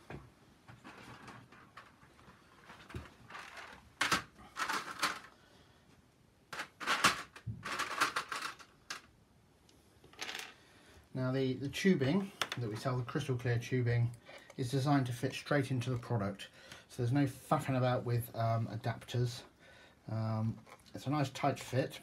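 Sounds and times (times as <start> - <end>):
objects handled on a table: 0.0 - 5.4, 10.0 - 10.6, 12.3 - 12.9.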